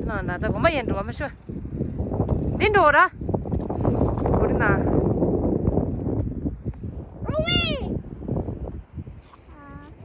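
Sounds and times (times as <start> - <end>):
wind rumble on microphone: 0.0 - 10.0
child's high drawn-out call: 7.3 - 8.0, 9.5 - 10.0.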